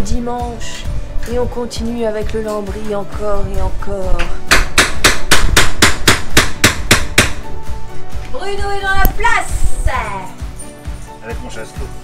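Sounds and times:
hammer nailing wood paneling: 4.5s - 7.4s.

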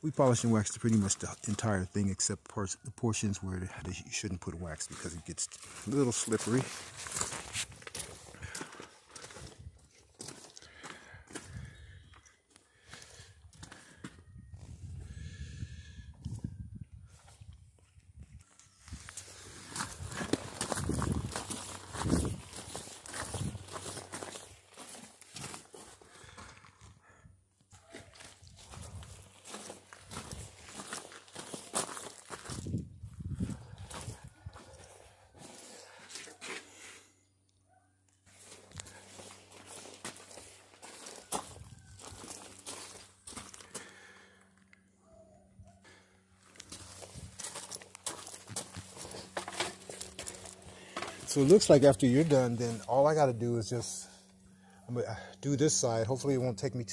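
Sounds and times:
footsteps on gravel: 4.8s - 11.9s, 18.9s - 26.8s, 27.8s - 36.8s, 38.3s - 44.5s, 46.4s - 53.3s.

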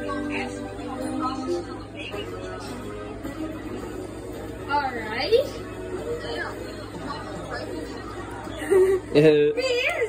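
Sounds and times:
quiet indistinct voices: 0.0s - 10.0s.

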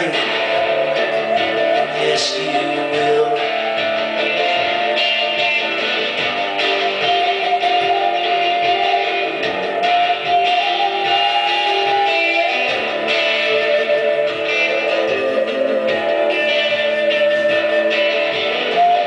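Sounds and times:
flute playing slow melody: 0.0s - 19.0s
strummed guitar chords: 0.0s - 19.0s.

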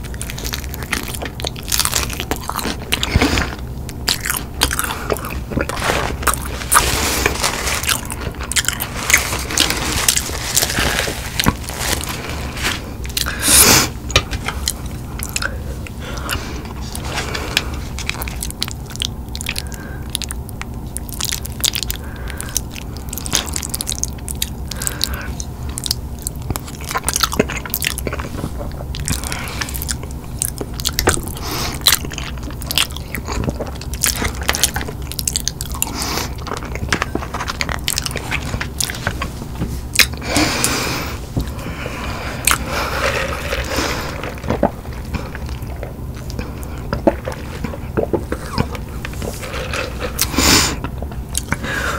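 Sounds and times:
chewing and crunching: 0.0s - 51.9s.

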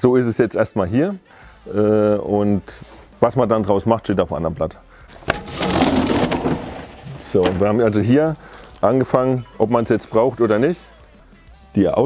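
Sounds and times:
roller shutter rolling up: 5.2s - 8.0s.

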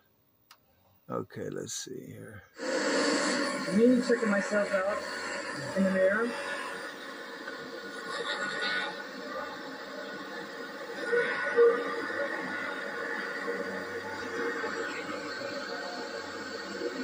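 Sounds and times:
tape hiss: 0.0s - 17.0s
faint background music: 1.1s - 7.4s.

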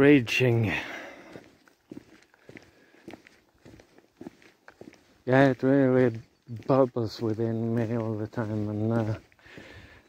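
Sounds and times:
faint footsteps on ground: 0.0s - 10.0s.

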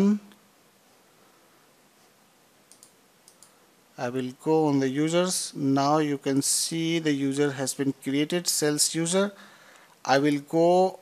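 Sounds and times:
faint room hiss: 0.0s - 11.0s
computer mouse clicks: 2.7s - 3.6s.

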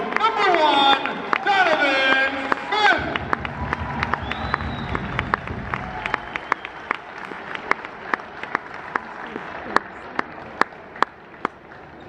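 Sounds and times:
crowd applauding: 0.0s - 12.0s.

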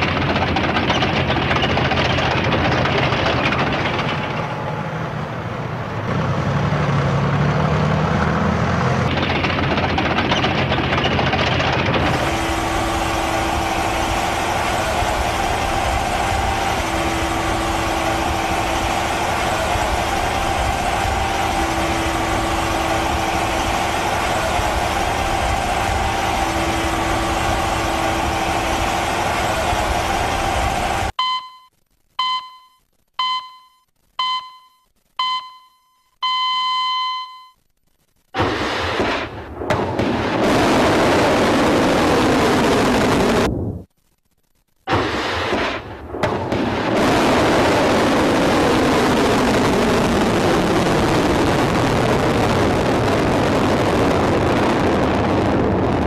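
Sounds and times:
tracked vehicle engine running: 0.0s - 31.2s, 46.8s - 56.0s
short electronic beeps: 31.2s - 37.6s.

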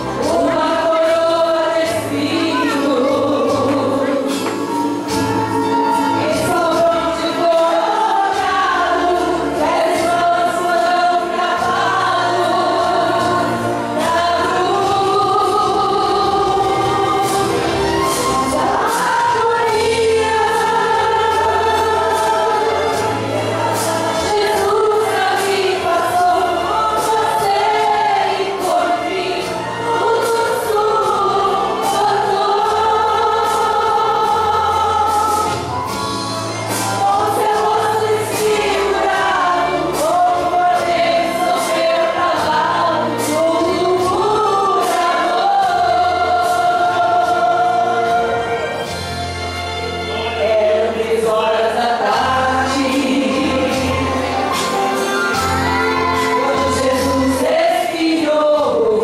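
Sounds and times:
woman singing into a microphone: 0.0s - 5.2s, 5.9s - 17.7s, 18.3s - 35.7s, 36.9s - 48.4s, 50.4s - 54.2s, 55.9s - 59.0s
women's choir singing a hymn: 0.0s - 49.2s, 50.0s - 59.0s
instrumental accompaniment: 0.0s - 59.0s.

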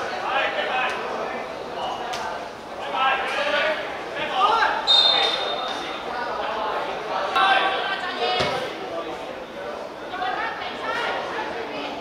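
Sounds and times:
referee's whistle: 4.9s - 5.8s.

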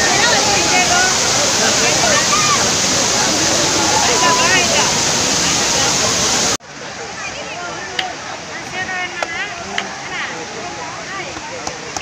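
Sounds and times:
people shouting and chattering: 0.0s - 12.0s
waterfall rushing: 0.0s - 12.0s.

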